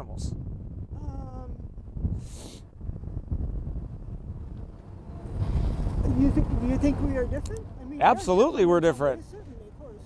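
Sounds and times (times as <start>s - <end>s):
wind rumbling on microphone: 0.0s - 10.0s
car approaching: 2.7s - 10.0s.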